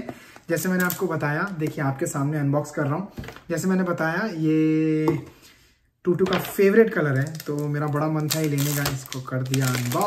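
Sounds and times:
packaging clicks and rustles: 6.4 - 10.0.

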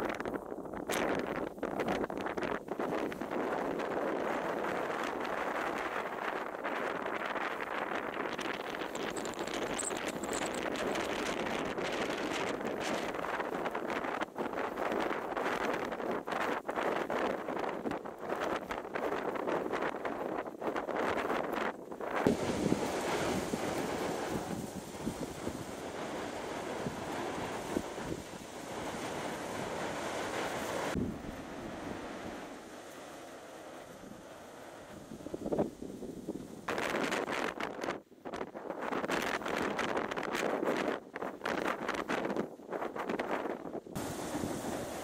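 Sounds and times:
gusty wind buffeting microphone: 0.0 - 45.0
heavy surf breaking: 22.3 - 37.3, 44.0 - 45.0.

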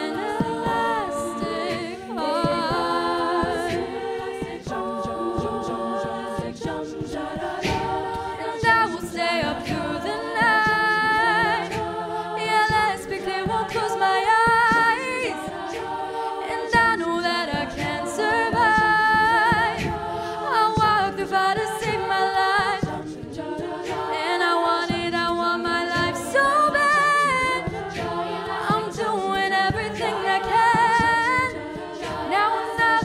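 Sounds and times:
female a cappella singing: 0.0 - 33.0
vocal percussion beat: 0.0 - 33.0.

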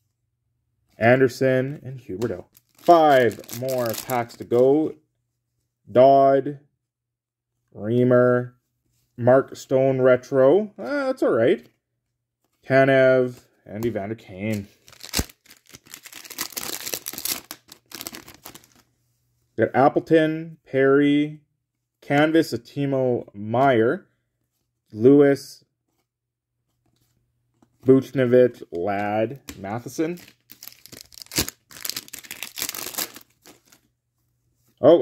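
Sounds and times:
foil wrapper tearing and crinkling: 14.8 - 18.8, 30.2 - 33.8.

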